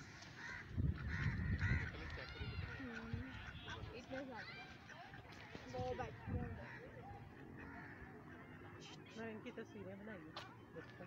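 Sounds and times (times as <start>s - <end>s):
ducks calling: 0.0s - 9.6s.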